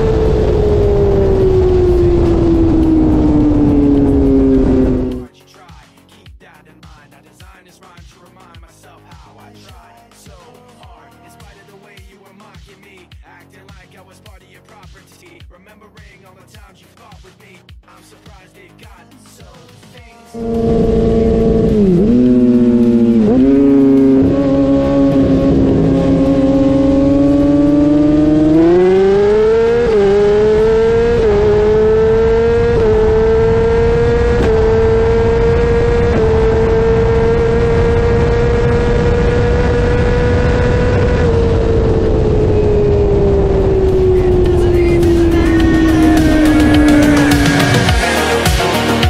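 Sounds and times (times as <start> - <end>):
motorcycle engine at full throttle: 0.0 - 5.3, 20.4 - 49.0.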